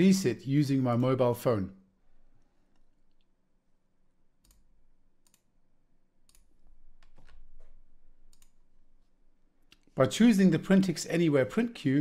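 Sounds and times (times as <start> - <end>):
faint computer mouse clicks: 8.3 - 8.6.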